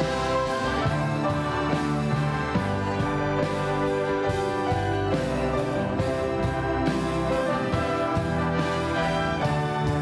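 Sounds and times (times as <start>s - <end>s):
church orchestra with brass playing hymn: 0.0s - 10.0s.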